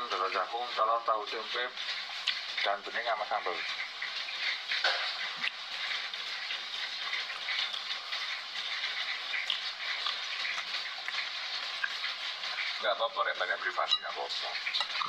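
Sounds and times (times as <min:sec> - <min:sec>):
faint rain patter: 0:00.0 - 0:15.0
steady rain hiss: 0:00.0 - 0:15.0.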